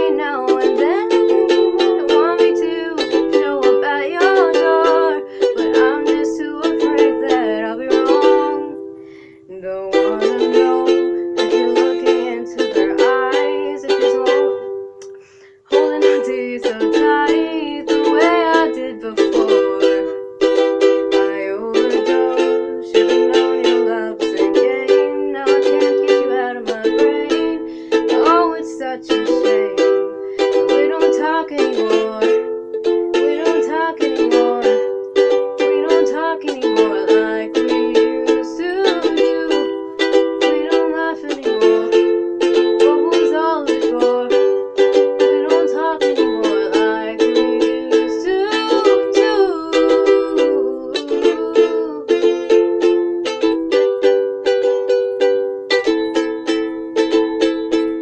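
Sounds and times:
girl singing: 0.0 - 58.0
ukulele strumming chords: 0.0 - 58.0.

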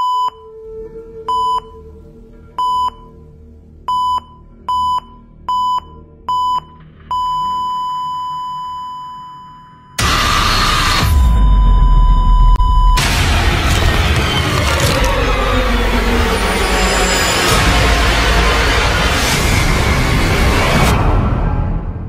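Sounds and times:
short electronic beeps: 3.9 - 13.0
loud deep rumbling noise: 10.0 - 22.0.

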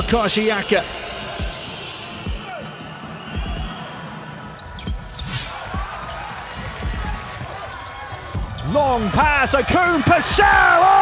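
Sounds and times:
arena crowd noise: 0.0 - 11.0
brief hiss: 5.1 - 5.8.

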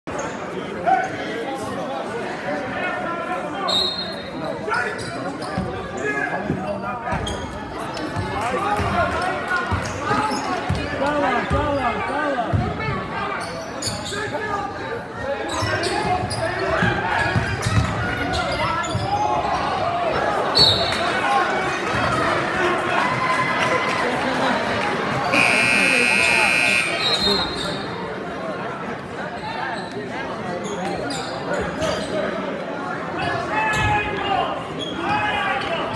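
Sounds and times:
voices echoing in a hall: 0.1 - 35.9
referee's whistle: 3.7 - 4.2, 25.3 - 27.8.

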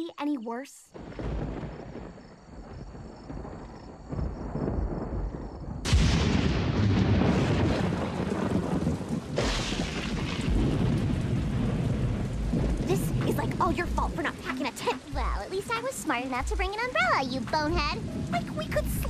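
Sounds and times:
rain downpour: 0.9 - 19.0
thunder rumbling: 1.0 - 19.0.

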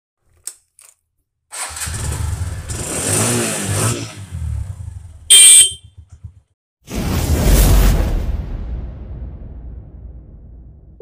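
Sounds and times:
motorcycle engine starting and revving: 1.5 - 6.6
loud beep: 5.3 - 5.9.

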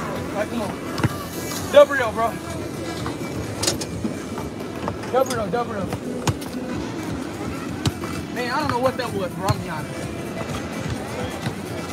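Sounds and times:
outdoor background noise: 0.0 - 11.9.

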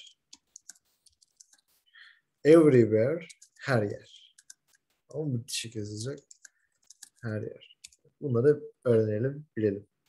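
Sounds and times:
computer keyboard typing: 0.3 - 1.7, 3.2 - 3.6, 4.2 - 4.9, 6.1 - 7.2, 7.8 - 8.0.

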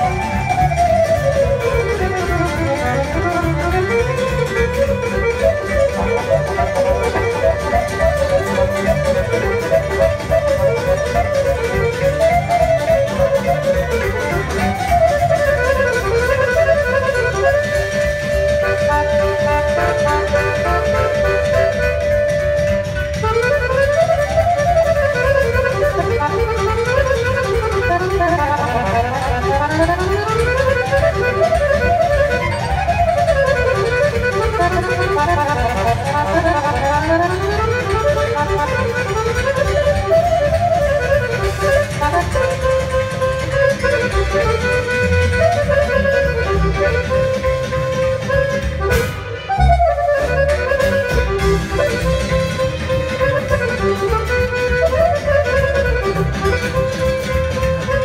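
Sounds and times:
accordion playing fast runs: 0.0 - 58.0
bass: 0.0 - 58.0
drums: 0.0 - 58.0.

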